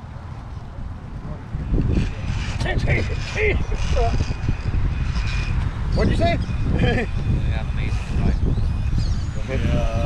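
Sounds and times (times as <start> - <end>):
wind buffeting microphone: 0.0 - 10.0
electric motor whine: 1.6 - 10.0.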